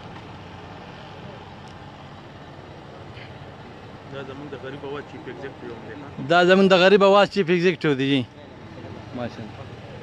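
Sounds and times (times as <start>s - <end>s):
low engine hum: 0.0s - 10.0s
murmured conversation: 0.5s - 10.0s.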